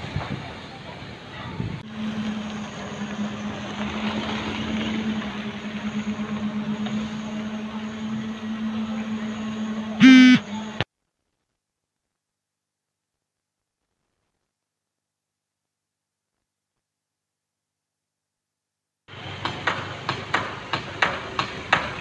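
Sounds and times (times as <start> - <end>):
traffic engine hum: 0.1 - 10.9, 19.1 - 22.0
vehicle horn honk: 10.0 - 10.7.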